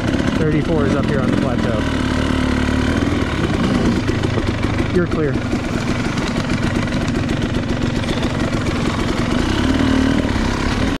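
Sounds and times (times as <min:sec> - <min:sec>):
dirt bike engine at low revs: 0:00.0 - 0:11.0.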